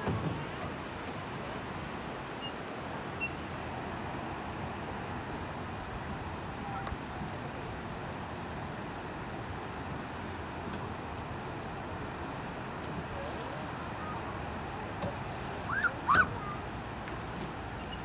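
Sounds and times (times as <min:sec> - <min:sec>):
steady outdoor noise: 0:00.0 - 0:18.0
oars splashing in water: 0:10.8 - 0:18.0.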